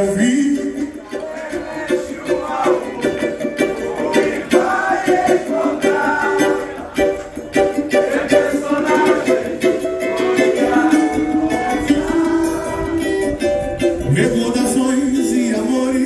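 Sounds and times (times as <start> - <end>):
cavaquinho strummed and picked: 0.0 - 16.0.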